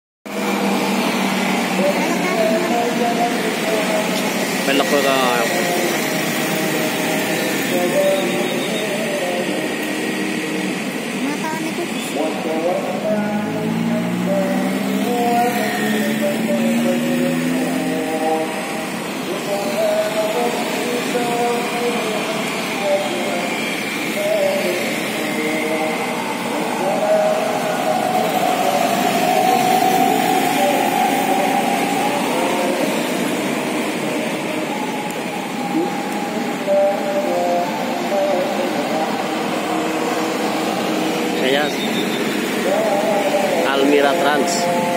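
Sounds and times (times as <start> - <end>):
cars passing: 0.3 - 44.9
motorcycles passing: 0.3 - 44.9
people's voices: 0.3 - 44.9.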